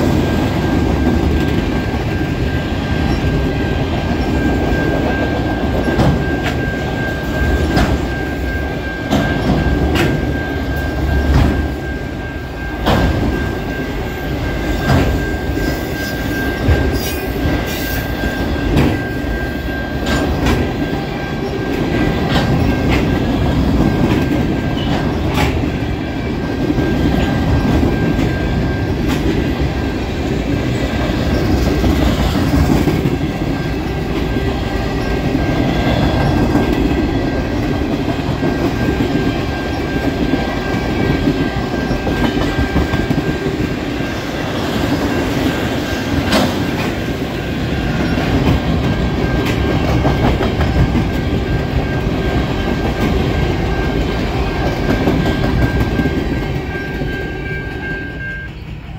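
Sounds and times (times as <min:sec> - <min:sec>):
train wheels clacking on rails: 0:00.0 - 0:58.9.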